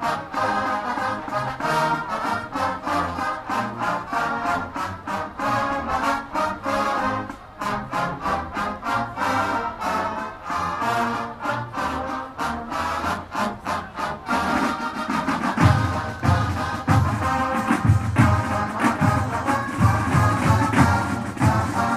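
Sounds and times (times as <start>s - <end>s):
brass marching band music: 0.0s - 21.9s
fast even drum beat: 14.5s - 21.9s.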